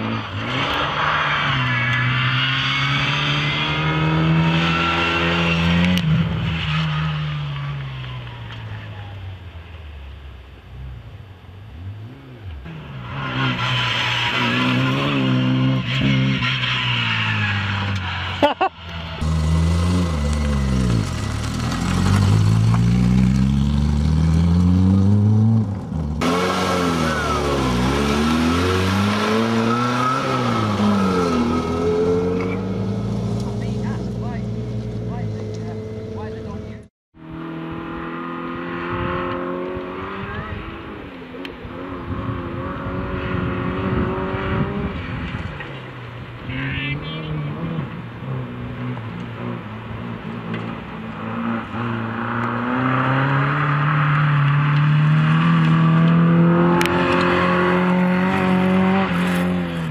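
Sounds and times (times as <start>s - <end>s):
cars accelerating past: 0.0s - 8.4s, 11.9s - 59.9s.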